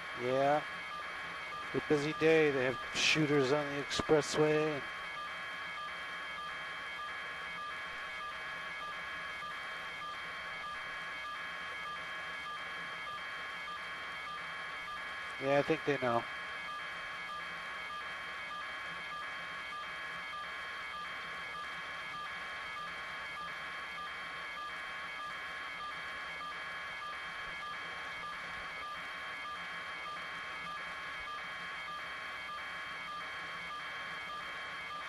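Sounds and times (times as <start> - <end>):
radio hiss: 1.7 - 4.8, 15.4 - 16.2.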